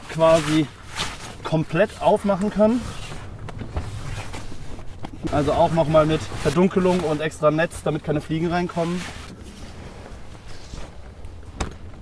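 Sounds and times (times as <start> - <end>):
canvas rustling: 0.0 - 12.0.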